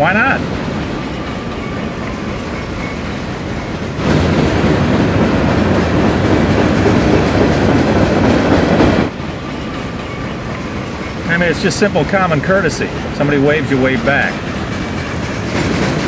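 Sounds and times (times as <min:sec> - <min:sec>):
train wheels on rails: 0:00.0 - 0:16.0.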